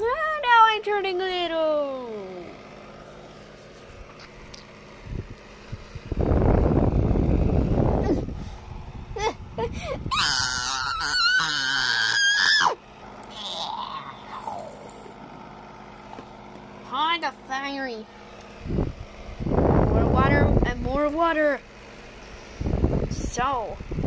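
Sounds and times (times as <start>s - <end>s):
child squealing: 9.2s - 14.8s.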